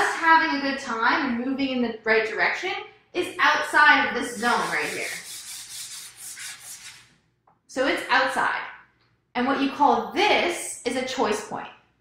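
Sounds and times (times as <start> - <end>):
chalk scratching on chalkboard: 4.2 - 7.2.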